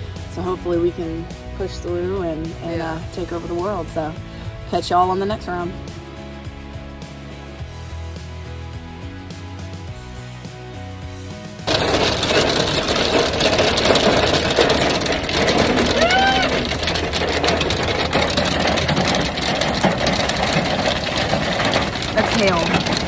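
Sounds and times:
background music: 0:00.0 - 0:23.0
hail drumming on car roof: 0:11.6 - 0:23.0
woman exclaiming: 0:15.9 - 0:16.6.

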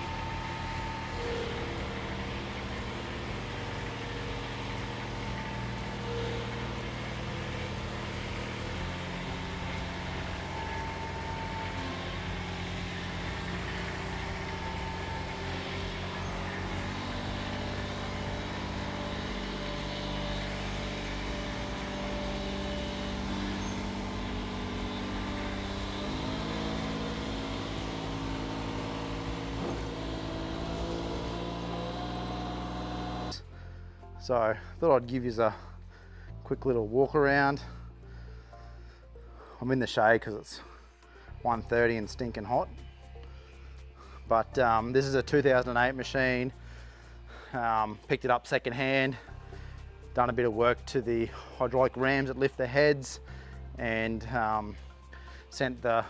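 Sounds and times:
mower engine running: 0:00.0 - 0:33.4.

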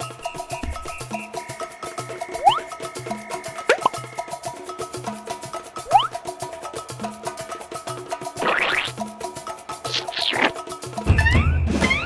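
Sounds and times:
playful cartoon music: 0:00.0 - 0:06.5, 0:08.1 - 0:12.0.

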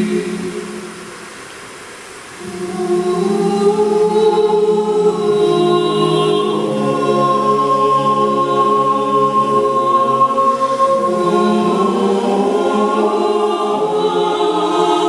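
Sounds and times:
mixed choir singing a cappella: 0:00.0 - 0:01.2, 0:02.4 - 0:15.0.

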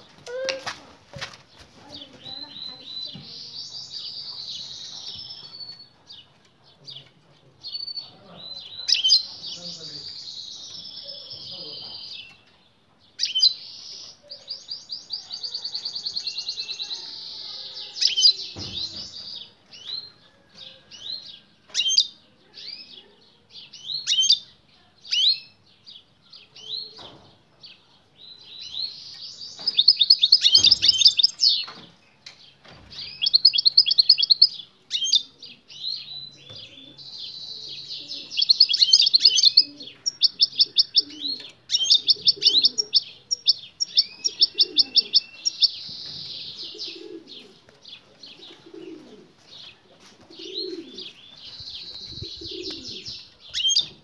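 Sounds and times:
bird chirps: 0:07.7 - 0:24.5, 0:28.3 - 0:54.0
buzzy trilled birdsong: 0:27.7 - 0:54.0.

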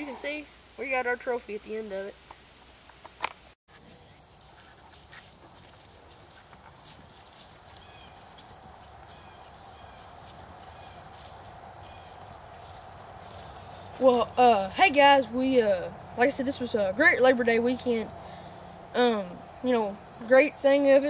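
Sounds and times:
crickets chirring: 0:00.0 - 0:21.0.

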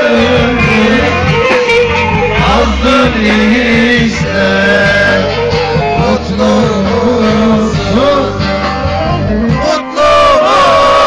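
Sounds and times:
folk music accompaniment: 0:00.0 - 0:11.0
man singing: 0:00.0 - 0:11.0.

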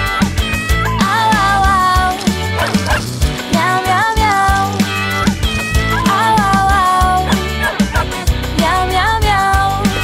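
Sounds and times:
children's song backing music: 0:00.0 - 0:10.0
dog barking: 0:02.3 - 0:03.2, 0:07.1 - 0:08.2.

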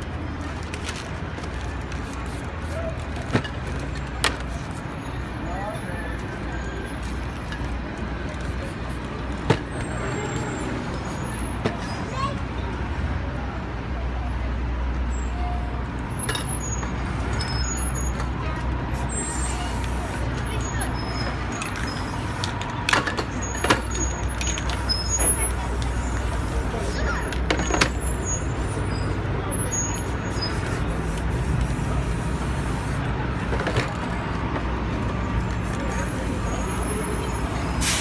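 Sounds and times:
street traffic rumbling: 0:00.0 - 0:38.0.

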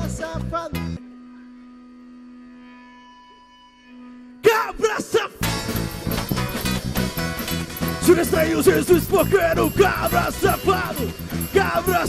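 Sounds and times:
band playing: 0:04.4 - 0:12.0.

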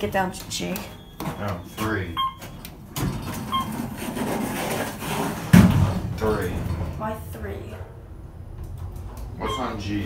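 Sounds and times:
elevator doors sliding shut: 0:02.3 - 0:10.0.

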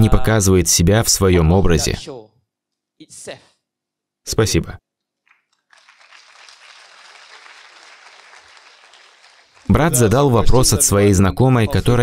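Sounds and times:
audience applauding: 0:05.3 - 0:10.2.

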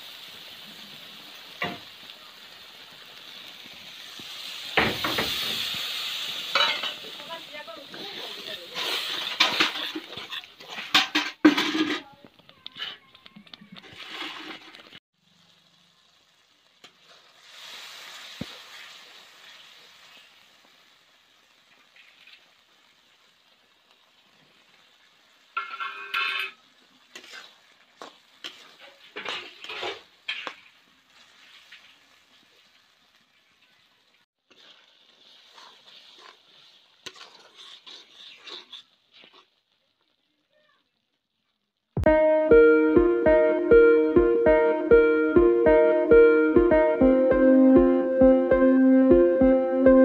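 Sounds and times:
water sizzling in hot oil: 0:00.0 - 0:42.0
spatula scraping metal pan: 0:07.9 - 0:12.0, 0:13.8 - 0:14.9, 0:25.6 - 0:31.9, 0:34.5 - 0:39.6.

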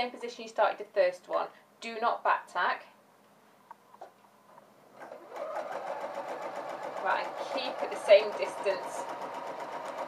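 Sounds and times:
sewing machine running: 0:05.0 - 0:10.0.

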